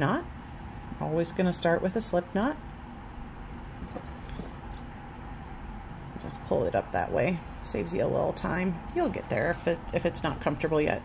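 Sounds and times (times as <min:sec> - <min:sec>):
faint handling sounds: 0:03.8 - 0:04.9.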